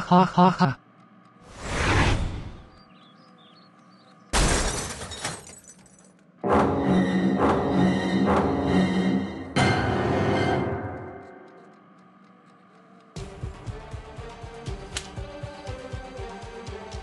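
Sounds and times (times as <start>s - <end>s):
whoosh: 1.5s - 2.7s
crockery crashing: 4.4s - 6.0s
dramatic music: 6.4s - 17.0s.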